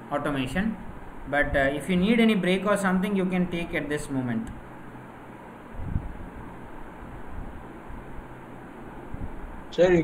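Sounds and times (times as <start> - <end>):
open microphone hiss and rumble: 0.0 - 10.0.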